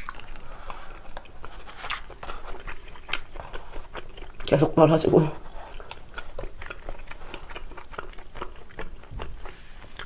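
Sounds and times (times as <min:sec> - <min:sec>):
chewing soft food: 0:00.0 - 0:10.0.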